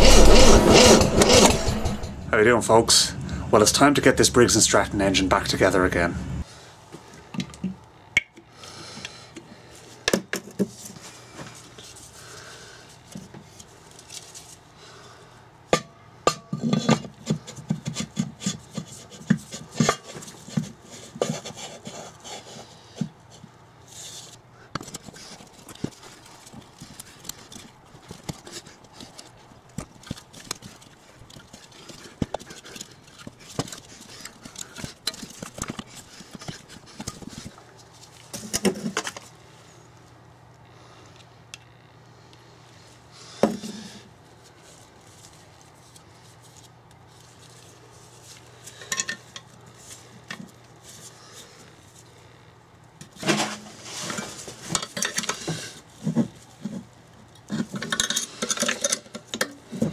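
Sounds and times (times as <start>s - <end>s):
metal engine parts clicking and knocking: 24.7s - 37.3s, 57.4s - 59.6s.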